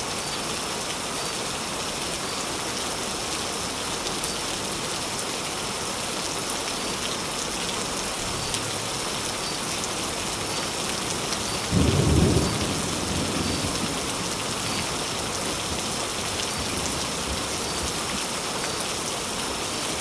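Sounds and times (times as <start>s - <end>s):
steady rain falling: 0.0s - 20.0s
low rumble of thunder: 11.6s - 15.0s.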